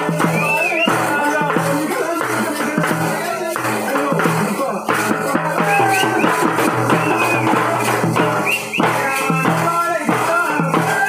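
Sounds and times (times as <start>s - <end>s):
double-headed drum beating: 0.0s - 11.0s
shakers: 0.0s - 11.0s
small hand cymbals: 0.0s - 11.0s.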